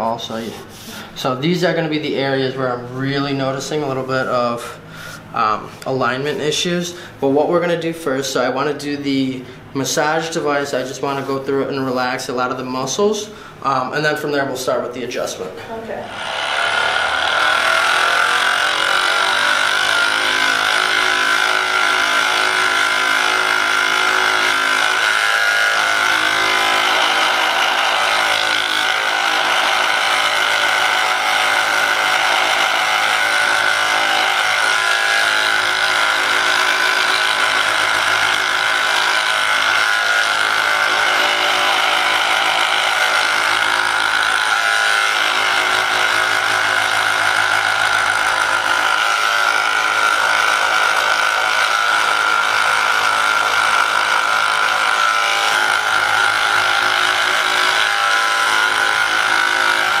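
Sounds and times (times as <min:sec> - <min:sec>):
massage gun motor buzz: 0:15.7 - 1:00.0.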